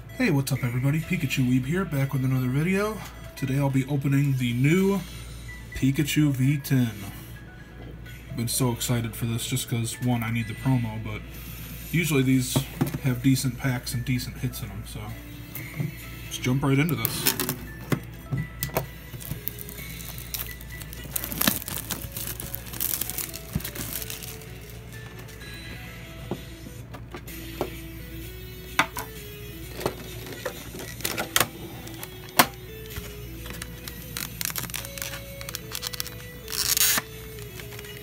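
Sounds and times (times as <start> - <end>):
soft background music: 0.0 - 38.0
plastic wrap crinkling and tearing: 19.1 - 25.4, 30.2 - 38.0.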